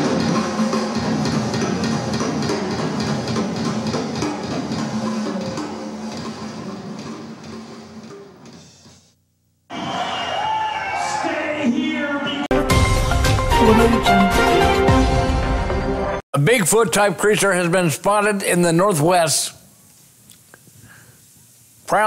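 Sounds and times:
music: 0.0s - 9.1s, 12.5s - 16.2s.

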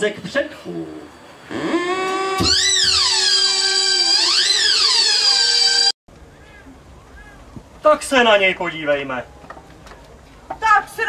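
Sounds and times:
theremin playing: 1.5s - 6.0s.

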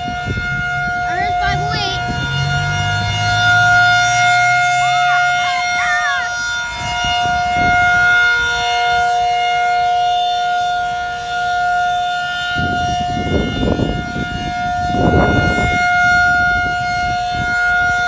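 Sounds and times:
low rumbling noise: 0.0s - 7.8s
warning siren steady tone: 0.0s - 18.0s.

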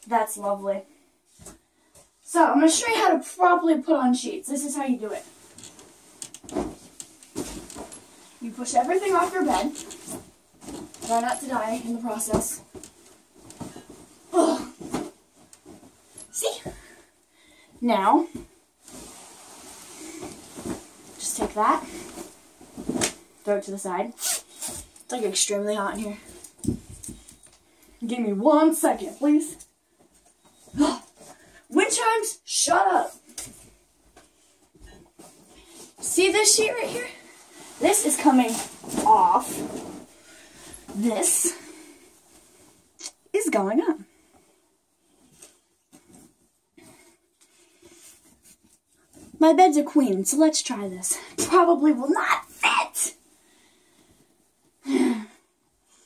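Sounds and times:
bedding rustling: 0.2s - 54.8s
soft bumps: 5.8s - 8.0s.

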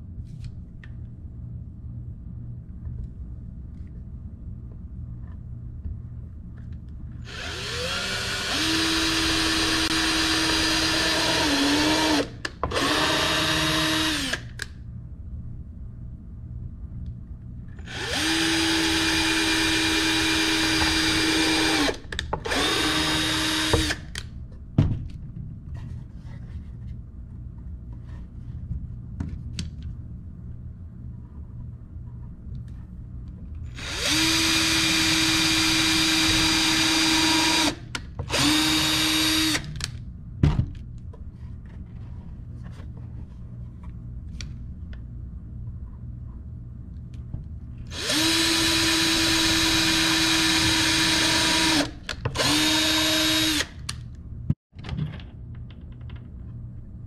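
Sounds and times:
cordless drill whining: 7.3s - 14.6s, 17.8s - 24.0s, 33.8s - 39.7s, 47.9s - 53.7s.

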